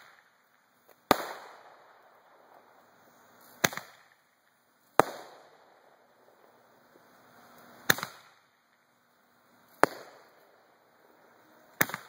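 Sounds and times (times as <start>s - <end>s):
roman candle pops with echo: 5.0s - 5.5s.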